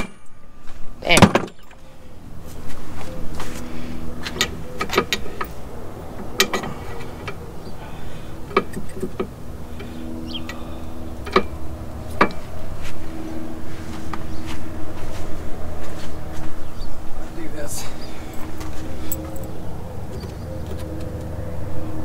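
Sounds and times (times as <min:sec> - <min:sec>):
steady low hum: 0:00.0 - 0:22.0
metal clinks and knocks: 0:04.2 - 0:07.4, 0:18.3 - 0:20.9.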